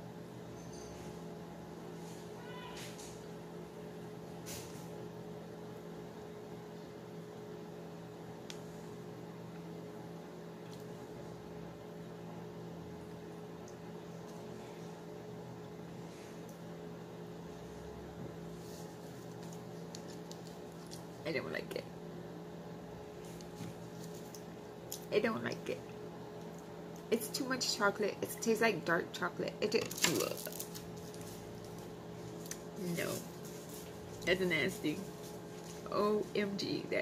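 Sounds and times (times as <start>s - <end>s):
low hum of room equipment: 0.0s - 37.0s.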